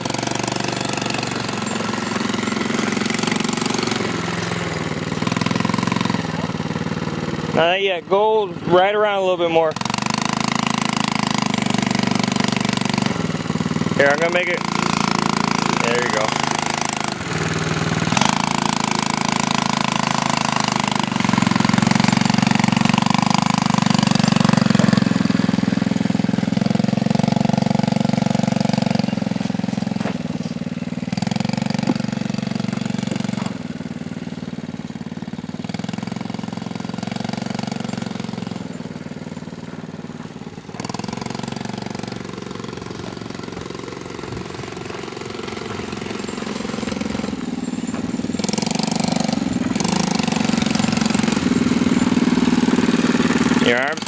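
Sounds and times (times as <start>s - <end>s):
atv engine revving: 0.0s - 54.0s.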